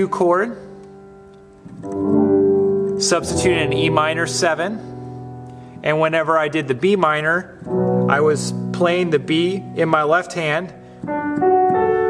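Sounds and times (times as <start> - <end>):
keyboard piano chord: 0.0 - 12.0.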